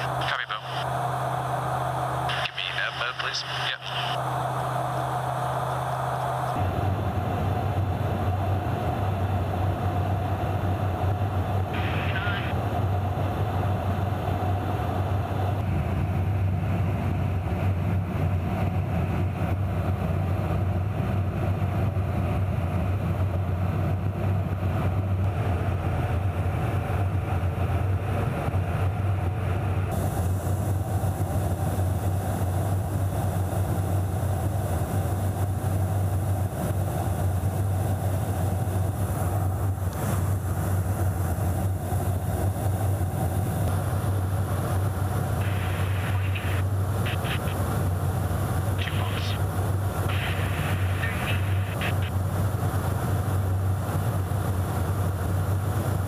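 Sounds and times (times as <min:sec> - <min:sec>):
aircraft engine and airflow drone: 0:00.0 - 0:56.0.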